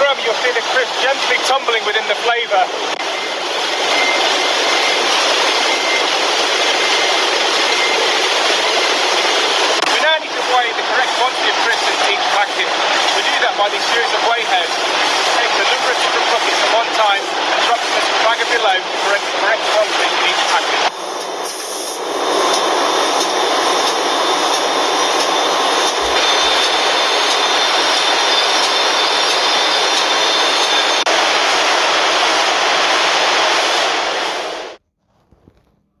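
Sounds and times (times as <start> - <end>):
conveyor running: 0.0 - 35.8.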